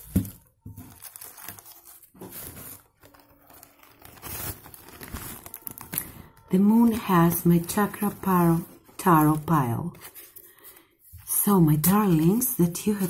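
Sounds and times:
pouch rustling and crinkling: 0.0s - 11.3s.

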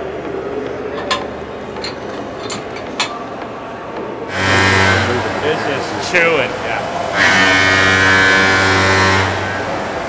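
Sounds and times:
workshop background noise: 0.0s - 10.0s.

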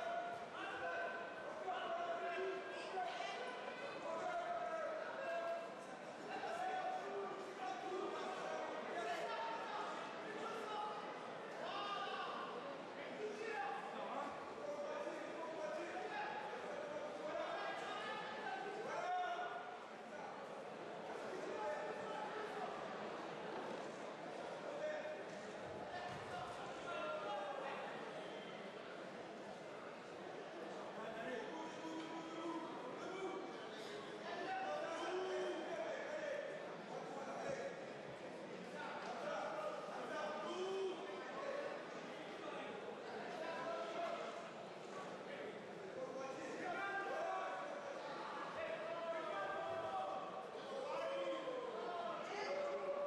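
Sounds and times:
indistinct voices in large hall: 0.0s - 53.0s.

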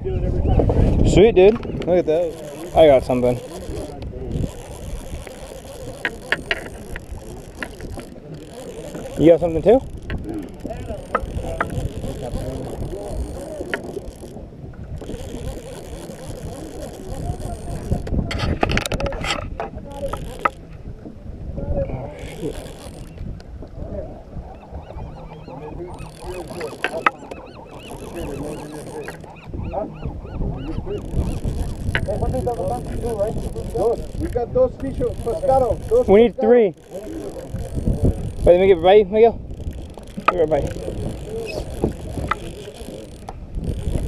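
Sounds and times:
faint voices: 0.6s - 23.2s, 23.8s - 44.0s
fishing reel gears whirring: 1.0s - 21.0s, 21.8s - 23.7s, 24.5s - 44.0s.

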